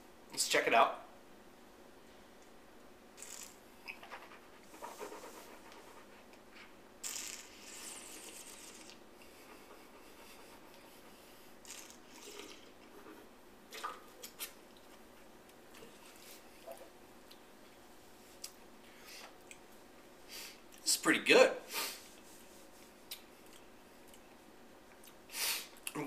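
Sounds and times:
mouth sounds sipping wine: 0:07.0 - 0:09.0, 0:11.6 - 0:12.9.

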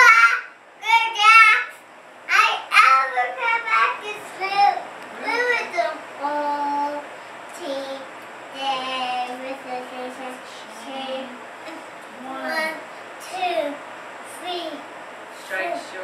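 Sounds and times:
boy singing: 0:12.2 - 0:13.8.

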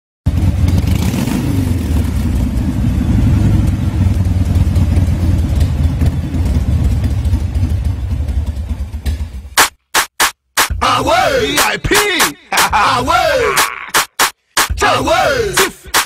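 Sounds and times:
motorcycle engine revving: 0:00.3 - 0:09.6.

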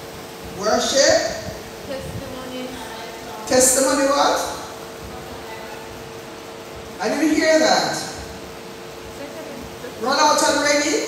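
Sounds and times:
steady hum and hiss: 0:00.0 - 0:11.0.

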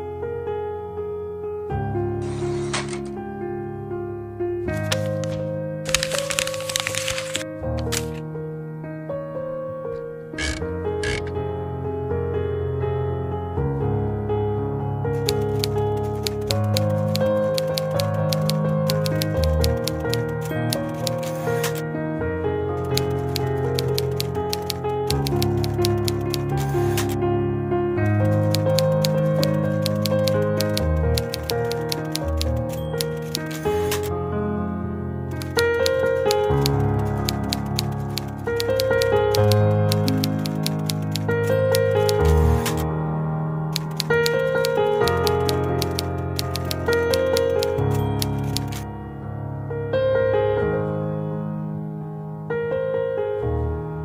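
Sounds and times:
typewriter keys clacking: 0:04.7 - 0:08.2, 0:15.2 - 0:21.8, 0:22.8 - 0:27.2, 0:28.1 - 0:34.1, 0:35.3 - 0:42.8, 0:43.8 - 0:48.8
background music: 0:14.7 - 0:49.9.

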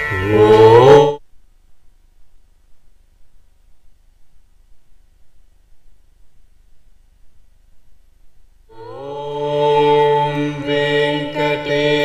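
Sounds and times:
voices chanting in unison: 0:00.1 - 0:01.2, 0:08.7 - 0:12.0.

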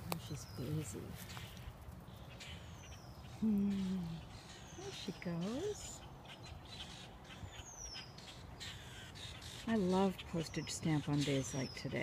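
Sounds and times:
blackbird chips: 0:00.0 - 0:12.0.

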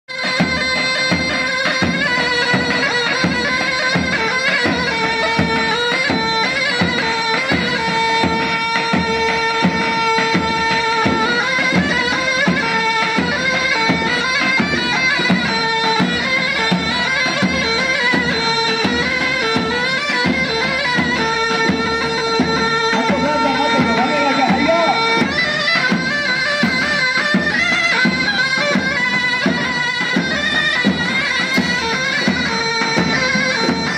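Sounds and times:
shrill reedy pipe melody: 0:00.1 - 0:33.9
steady drum beat: 0:00.1 - 0:33.9.

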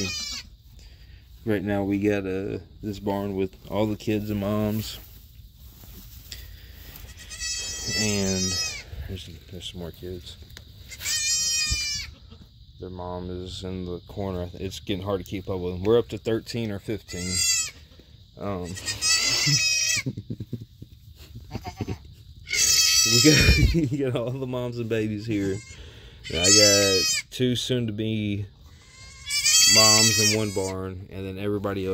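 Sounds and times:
goat kid bleating: 0:00.0 - 0:00.5, 0:06.9 - 0:09.0, 0:10.8 - 0:12.5, 0:17.0 - 0:18.0, 0:18.6 - 0:20.1, 0:21.3 - 0:23.8, 0:25.1 - 0:27.3, 0:28.6 - 0:30.7.

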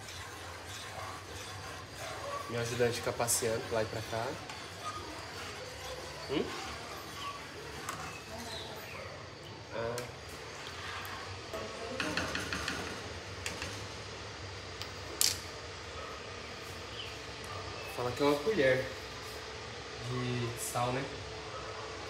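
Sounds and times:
plastic spoon stirring liquid: 0:00.0 - 0:09.6.

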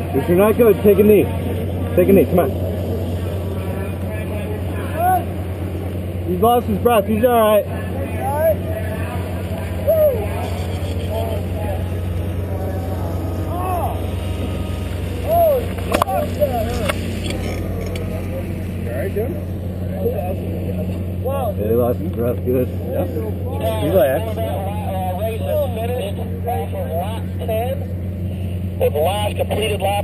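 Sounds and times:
quad bike engine racing: 0:00.0 - 0:24.4
people shouting: 0:03.1 - 0:05.7, 0:07.6 - 0:21.6.

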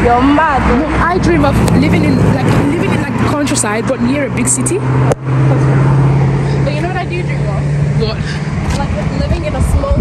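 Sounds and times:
women talking: 0:00.0 - 0:04.9, 0:05.5 - 0:10.0
vehicle engine humming: 0:00.0 - 0:10.0.

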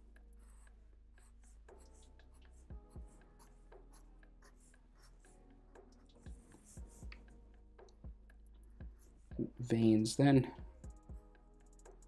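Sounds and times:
quiet background music: 0:00.0 - 0:12.0
soft low thumps: 0:10.6 - 0:11.3.

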